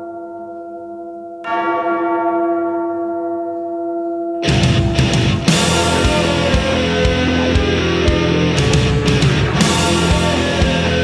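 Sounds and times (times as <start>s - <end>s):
large bell tolling: 0.0s - 11.0s.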